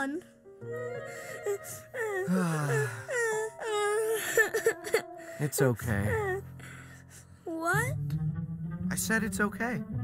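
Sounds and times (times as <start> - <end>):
young boy crying: 0.8 - 7.9.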